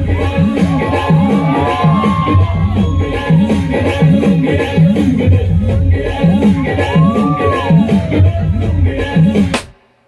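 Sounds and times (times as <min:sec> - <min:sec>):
crowd noise: 0:00.0 - 0:09.0
loud dance remix music: 0:00.0 - 0:09.7.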